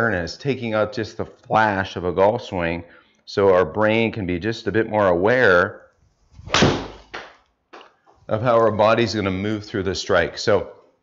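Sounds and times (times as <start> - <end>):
golf club swishing: 6.0 - 9.2
club striking ball off mat: 6.4 - 7.9.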